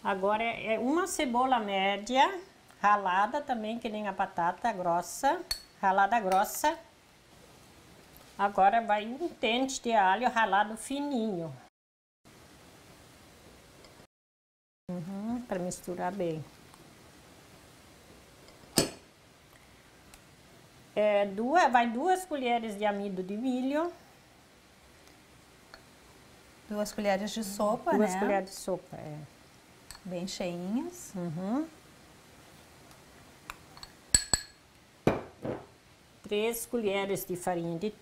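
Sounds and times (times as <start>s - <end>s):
glass bowl clinking: 5.5s - 6.4s, 18.5s - 19.1s, 33.8s - 35.6s.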